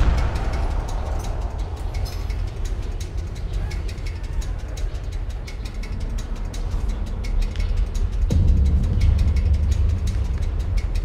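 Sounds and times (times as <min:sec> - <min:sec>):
train clicking and rattling: 0:00.0 - 0:11.0
train rumbling: 0:00.0 - 0:11.0.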